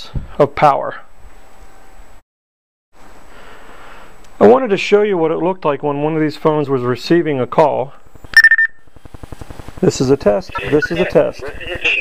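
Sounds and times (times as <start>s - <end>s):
high handset chirp: 8.4s - 8.9s, 10.5s - 11.1s
voice over handset: 9.8s - 12.0s.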